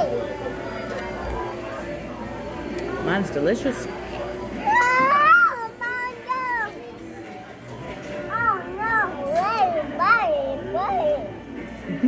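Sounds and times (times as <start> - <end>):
toddler babbling: 4.6 - 6.8, 8.3 - 11.3.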